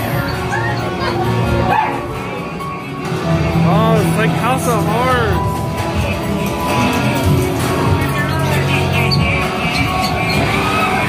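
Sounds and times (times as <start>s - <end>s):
soundtrack music: 0.0s - 11.0s.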